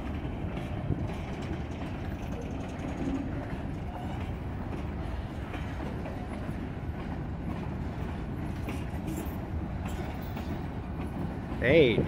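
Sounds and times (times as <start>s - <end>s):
freight train rolling past: 0.0s - 12.0s.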